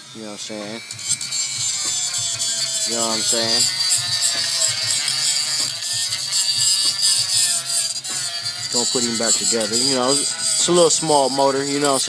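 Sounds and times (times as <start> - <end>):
hand-held grinder grinding metal: 0.0 - 12.0.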